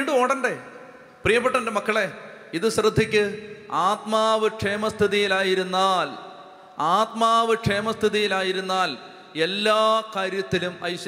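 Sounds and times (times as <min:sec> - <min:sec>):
man preaching through microphone: 0:00.0 - 0:11.0.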